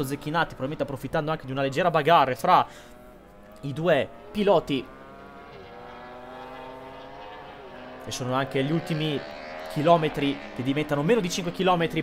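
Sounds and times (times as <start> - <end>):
racing motorcycle engines high revs: 2.7 - 12.0.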